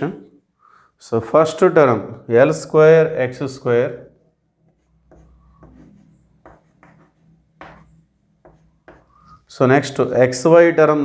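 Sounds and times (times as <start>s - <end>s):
chalk scratching on blackboard: 4.6s - 9.5s.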